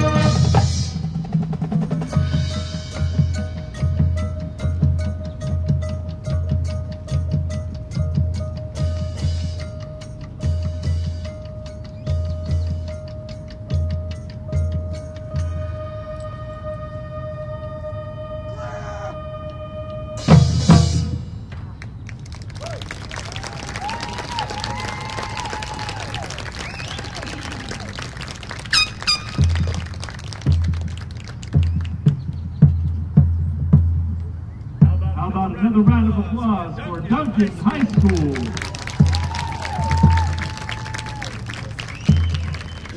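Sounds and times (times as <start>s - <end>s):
deep marching drum beats: 0.0s - 16.2s, 20.2s - 22.5s, 23.4s - 42.9s
long held band note: 15.2s - 21.3s.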